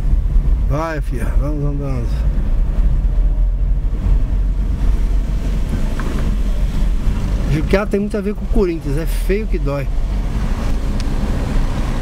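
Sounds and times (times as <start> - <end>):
car engine rumble: 0.0 - 12.0
tyres on wet road: 0.0 - 12.0.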